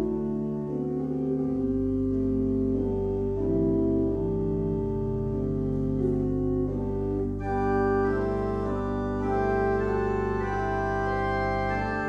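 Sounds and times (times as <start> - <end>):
church organ sustained chords: 0.0 - 12.0.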